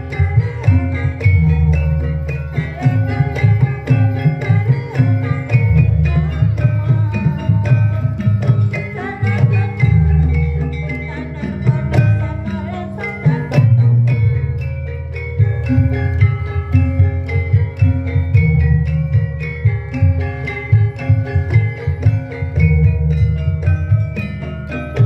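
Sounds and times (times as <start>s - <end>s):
steady drum beats: 0.0s - 25.0s.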